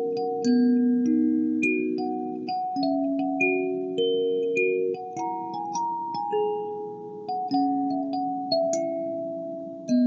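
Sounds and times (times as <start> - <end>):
kalimba playing slow carol melody: 0.0 - 10.0.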